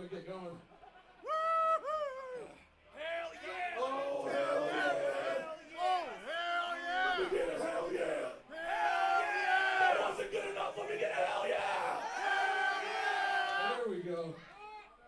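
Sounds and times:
people yelling and whooping: 0:01.1 - 0:13.8.

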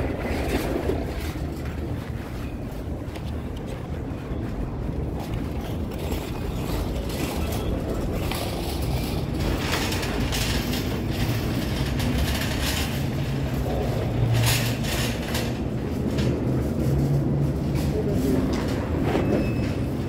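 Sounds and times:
shopping cart rattling on concrete: 0:00.0 - 0:03.0, 0:04.5 - 0:20.0.

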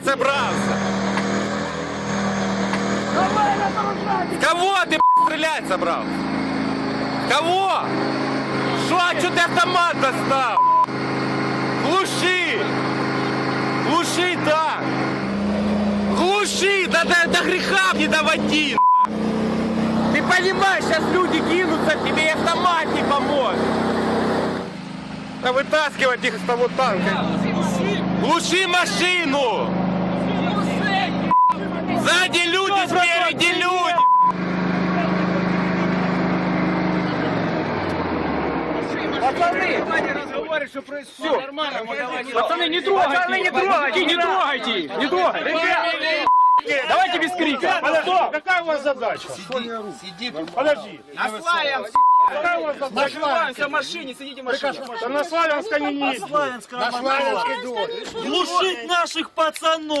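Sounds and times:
tank engine humming: 0:00.0 - 0:40.3
short single-pitch beep: 0:05.0 - 0:05.3, 0:10.6 - 0:10.9, 0:18.8 - 0:19.1, 0:31.3 - 0:31.6, 0:34.0 - 0:34.4, 0:46.2 - 0:46.7, 0:51.9 - 0:52.4.

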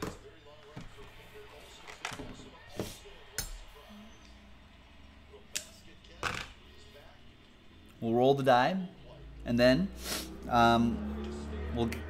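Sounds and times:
faint sports commentary: 0:00.0 - 0:12.0.

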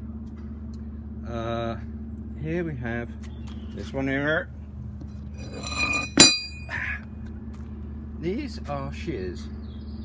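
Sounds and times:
metal scraping on stone: 0:05.4 - 0:06.7
metal tool clinking on stone: 0:05.4 - 0:06.7.

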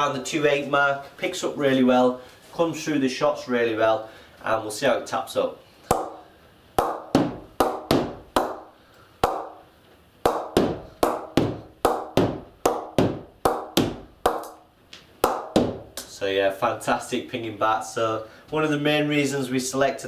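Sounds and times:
ball tapping on cricket bat: 0:06.8 - 0:09.6, 0:10.2 - 0:16.1.

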